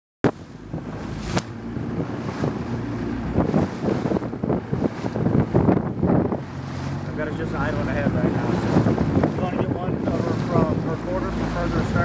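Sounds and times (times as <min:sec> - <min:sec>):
choppy sea splashing: 0:00.2 - 0:12.0
wind buffeting microphone: 0:00.2 - 0:12.0
low engine hum: 0:00.3 - 0:12.0.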